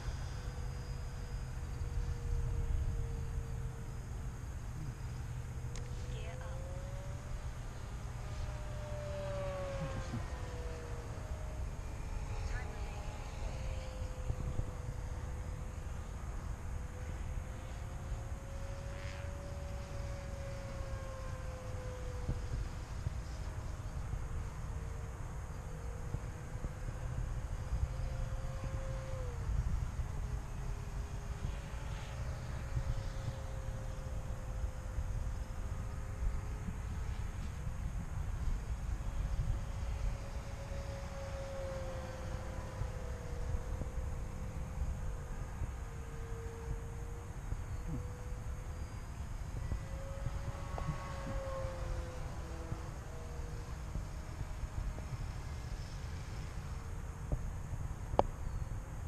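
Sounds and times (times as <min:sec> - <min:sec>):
model plane motor whining: 0:00.0 - 0:59.0
steady low rumble: 0:00.0 - 0:59.0.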